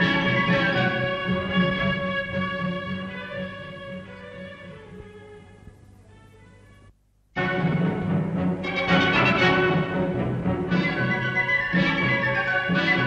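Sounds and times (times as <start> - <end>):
instrumental music: 0.0 - 13.0.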